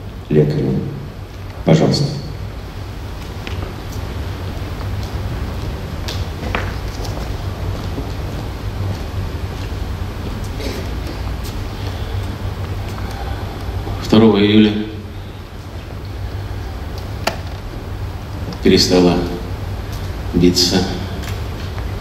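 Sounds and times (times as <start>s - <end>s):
low hum of sound system: 0.0s - 22.0s.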